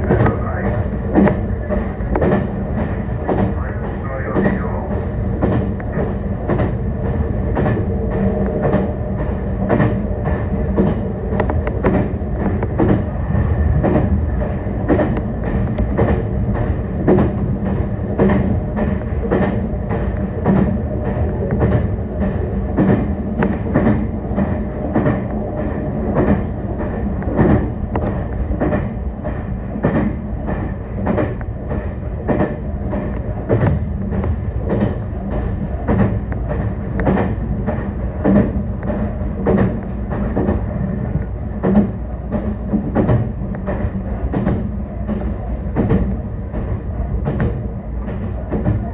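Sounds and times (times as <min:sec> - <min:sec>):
train rumble and hum: 0:00.0 - 0:48.9
wheels clicking over rail joints: 0:05.2 - 0:48.9.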